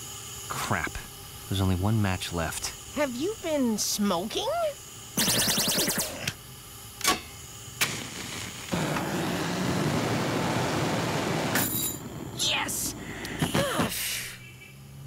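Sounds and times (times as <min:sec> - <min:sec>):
cutting torch hissing: 0:00.0 - 0:14.6.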